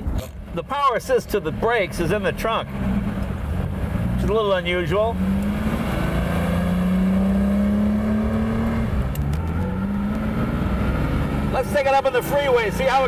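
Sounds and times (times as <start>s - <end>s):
car engine accelerating: 0.0s - 13.0s.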